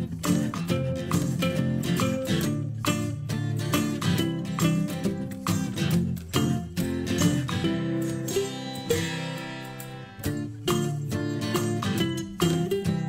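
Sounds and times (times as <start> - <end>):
acoustic guitar music: 0.0 - 13.0.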